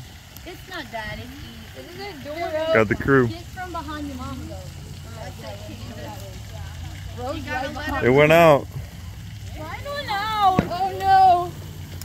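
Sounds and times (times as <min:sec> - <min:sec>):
people talking indistinctly: 0:00.4 - 0:11.6.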